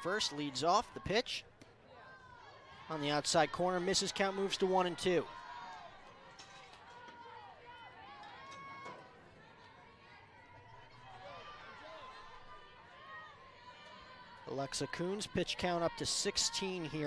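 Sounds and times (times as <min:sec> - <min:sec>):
faint crowd chatter and calls: 0:00.0 - 0:17.0.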